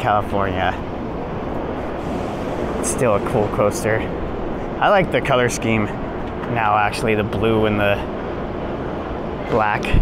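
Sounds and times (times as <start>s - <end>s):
outdoor background rumble and hiss: 0.0s - 10.0s.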